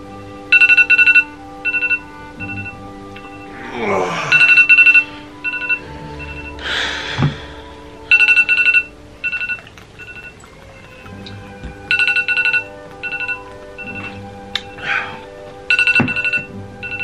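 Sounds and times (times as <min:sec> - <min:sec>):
faint background music: 0:00.0 - 0:17.0
smartphone ringtone trills: 0:00.5 - 0:03.6, 0:04.3 - 0:06.6, 0:08.1 - 0:11.1, 0:11.9 - 0:14.2, 0:15.7 - 0:17.0.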